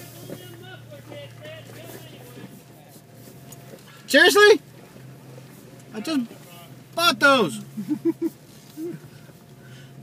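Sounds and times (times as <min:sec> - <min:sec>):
faint voices talking: 0:00.0 - 0:07.7
off-road vehicle engine humming: 0:00.0 - 0:10.0.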